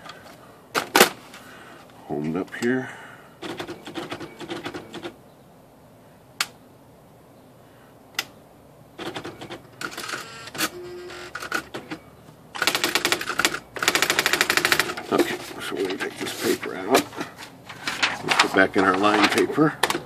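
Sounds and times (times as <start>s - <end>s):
typewriter rapid ticking: 3.4s - 5.1s, 9.0s - 10.2s, 12.6s - 15.4s
typewriter clicks: 3.4s - 5.2s, 9.0s - 10.7s, 12.6s - 15.3s.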